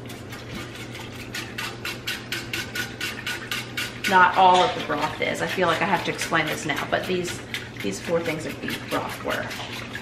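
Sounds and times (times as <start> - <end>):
sauce simmering: 0.0 - 7.8
steady low hum: 0.0 - 10.0
whisk scraping a skillet: 0.0 - 10.0.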